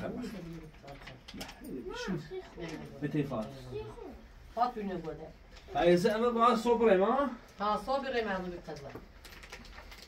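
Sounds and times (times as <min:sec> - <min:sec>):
voices in a small room: 0:00.0 - 0:10.0.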